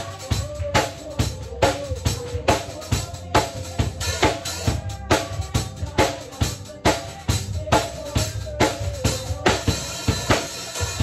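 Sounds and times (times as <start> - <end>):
bass: 0.0 - 11.0
bass drum and snare beat: 0.0 - 11.0
keyboard: 0.0 - 11.0.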